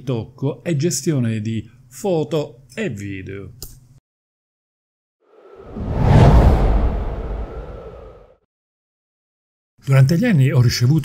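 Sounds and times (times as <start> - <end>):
cinematic whoosh: 5.4 - 8.4
deep rumble: 5.5 - 8.4.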